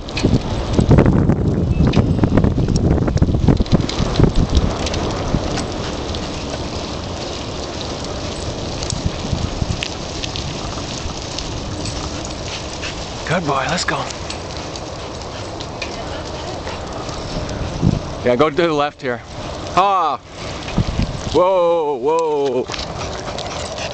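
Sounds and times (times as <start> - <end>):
small clicks and rattles: 0.0 - 17.6
bicycle tyres rolling on asphalt: 0.0 - 23.9
wind buffeting microphone: 0.0 - 23.9.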